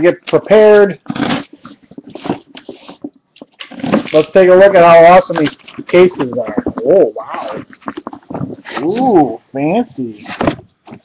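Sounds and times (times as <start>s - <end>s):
cardboard tearing and scraping: 0.8s - 9.0s.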